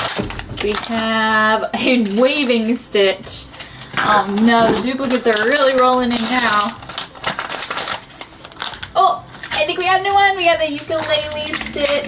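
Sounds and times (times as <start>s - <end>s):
plastic packaging crinkling and tearing: 0.0s - 2.8s, 3.4s - 12.0s.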